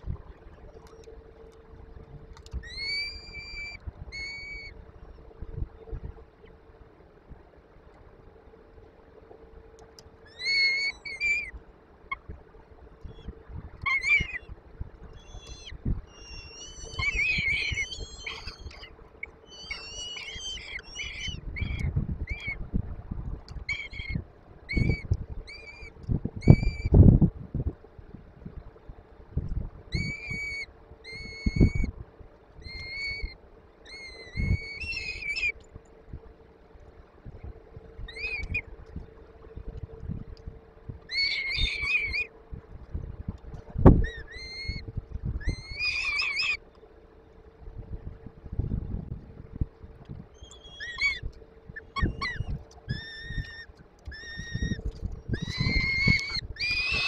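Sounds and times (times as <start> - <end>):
faint steady hum: 0.0 - 57.0
chicks high begging calls: 41.1 - 42.3, 50.4 - 51.2, 51.8 - 54.8, 55.4 - 57.0.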